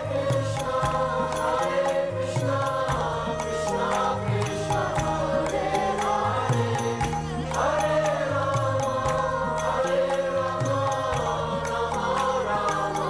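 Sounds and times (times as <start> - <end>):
group chanting devotional melody: 0.0 - 13.0
high percussive beat: 0.0 - 13.0.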